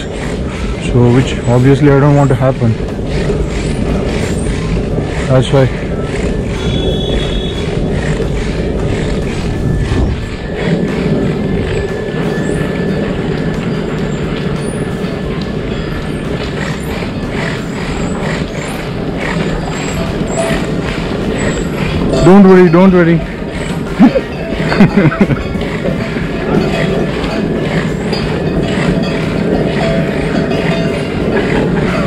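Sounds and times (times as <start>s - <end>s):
wheels rolling over rough asphalt: 0.0s - 32.0s.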